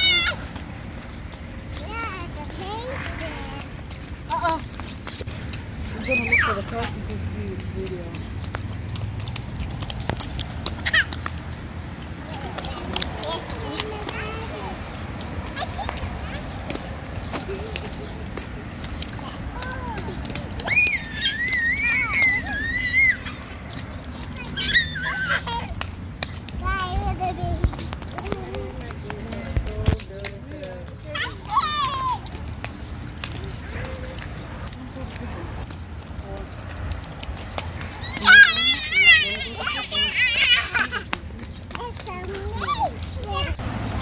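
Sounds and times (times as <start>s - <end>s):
toddlers squealing and babbling: 0.0s - 1.0s, 5.8s - 6.9s, 10.6s - 11.4s, 12.2s - 16.9s, 19.0s - 26.0s, 31.1s - 32.5s, 37.8s - 43.6s
footsteps splashing in puddles: 0.0s - 44.0s.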